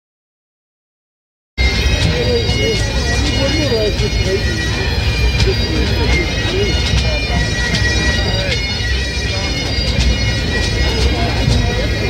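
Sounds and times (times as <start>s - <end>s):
bagpipes playing a tune: 1.6s - 12.0s
drum strokes: 1.6s - 12.0s.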